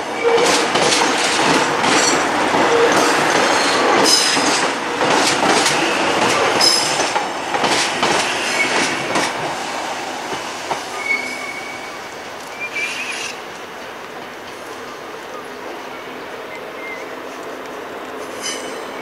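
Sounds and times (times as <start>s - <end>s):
high squeals of train: 0.0s - 17.6s, 18.2s - 19.0s
electric train rolling past: 0.0s - 19.0s.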